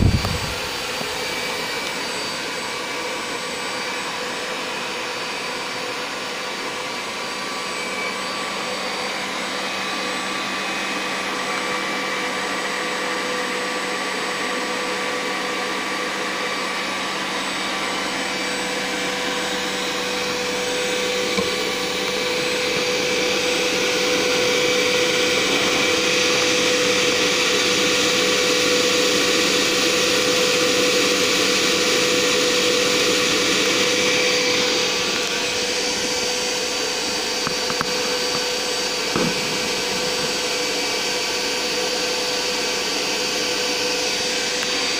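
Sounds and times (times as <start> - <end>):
electric ducted fan whining: 0.0 - 44.9.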